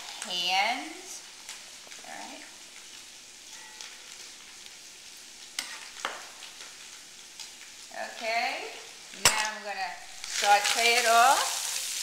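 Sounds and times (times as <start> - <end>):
vegetables sizzling in pot: 0.0 - 12.0.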